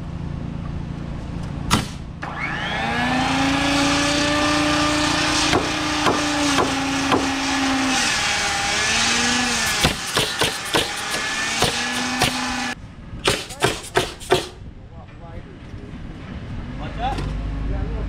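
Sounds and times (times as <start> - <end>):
nail gun shots: 1.7 - 2.1, 5.5 - 7.3, 9.6 - 14.6
circular saw cutting lumber: 2.2 - 14.6.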